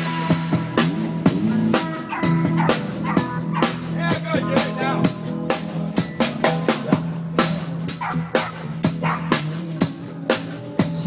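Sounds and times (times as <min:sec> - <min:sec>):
bass line: 0:00.0 - 0:11.0
drum kit beat: 0:00.0 - 0:11.0
high bending notes: 0:00.0 - 0:11.0.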